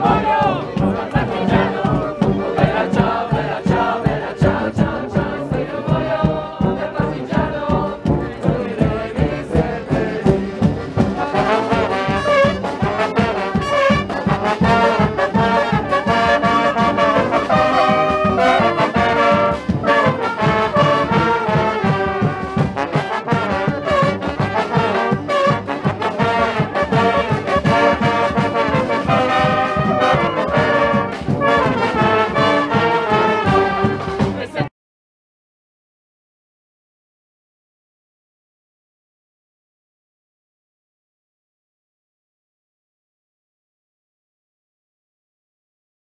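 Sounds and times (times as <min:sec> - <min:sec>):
street brass band playing: 0:00.0 - 0:34.7.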